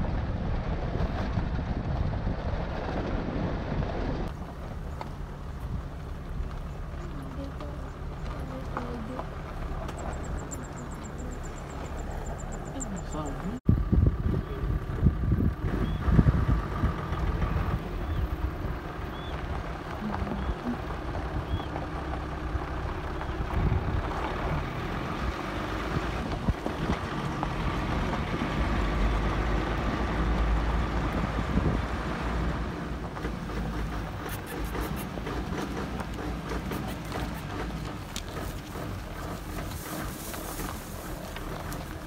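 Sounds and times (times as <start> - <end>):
vehicle engine running: 0.0 - 42.0
wind buffeting microphone: 0.0 - 42.0.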